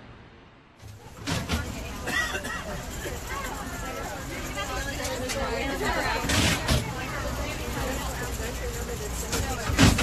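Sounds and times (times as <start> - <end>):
low rumble of cable car: 0.0 - 10.0
passengers talking: 0.8 - 10.0.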